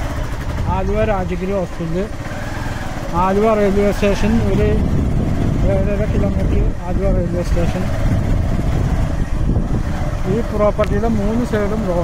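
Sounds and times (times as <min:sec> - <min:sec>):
vehicle rumble: 0:00.0 - 0:12.0.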